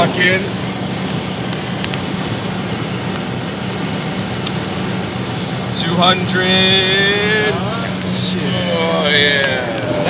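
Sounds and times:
car engine drone: 0.0 - 10.0
wind and road noise: 0.0 - 10.0.

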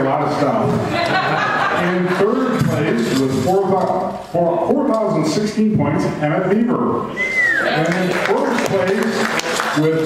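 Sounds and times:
man talking into a microphone: 0.0 - 10.0.

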